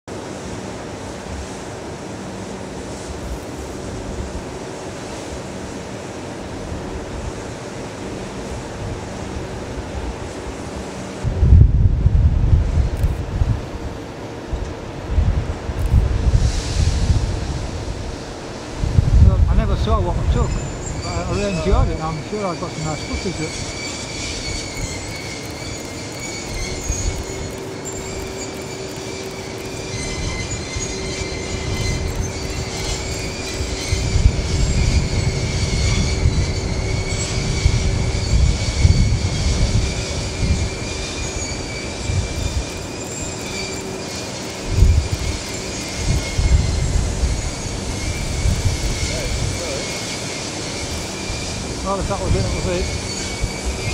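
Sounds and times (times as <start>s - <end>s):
low rumble of moving air: 5.3s - 22.3s, 31.4s - 42.7s
fans whining: 17.4s - 53.9s.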